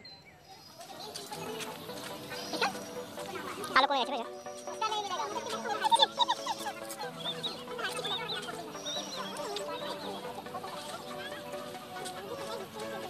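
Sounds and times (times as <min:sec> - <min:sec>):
high chirping calls: 0:00.0 - 0:13.0
sustained chord music: 0:01.4 - 0:13.0.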